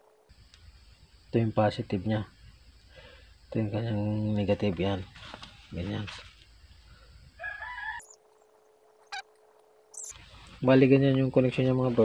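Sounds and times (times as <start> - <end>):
faint steady hum: 0.0 - 12.0
rooster crowing: 7.4 - 8.2.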